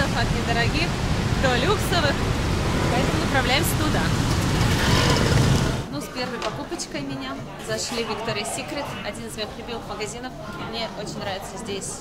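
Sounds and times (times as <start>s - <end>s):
traffic on wet street: 0.0s - 5.9s
motor scooter passing: 1.6s - 5.9s.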